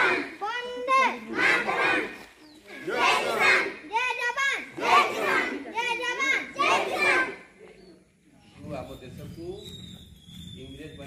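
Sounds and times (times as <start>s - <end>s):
children chanting slogans: 0.0s - 7.6s.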